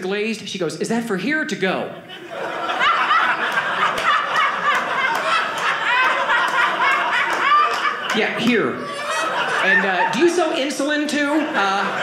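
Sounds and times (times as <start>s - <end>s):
audience laughing: 2.0s - 12.0s.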